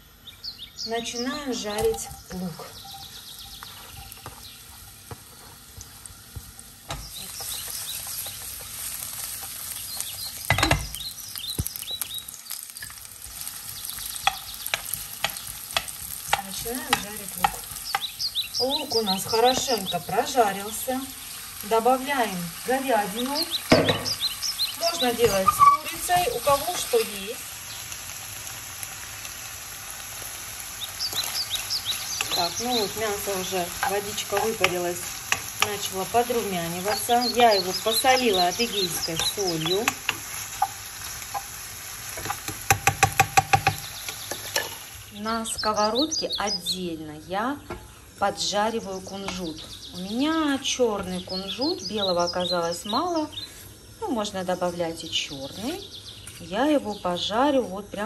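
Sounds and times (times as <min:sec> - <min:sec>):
onions sizzling in oil: 0:00.0 - 0:58.0
spatula squeaking in a pan: 0:01.8 - 0:05.1, 0:07.0 - 0:20.2, 0:23.4 - 0:27.0, 0:36.7 - 0:41.5
spatula knocking against pan: 0:42.2 - 0:43.8.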